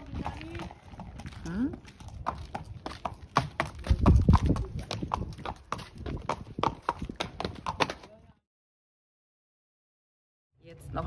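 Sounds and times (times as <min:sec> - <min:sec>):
horse hooves on hard ground: 0:00.0 - 0:08.3.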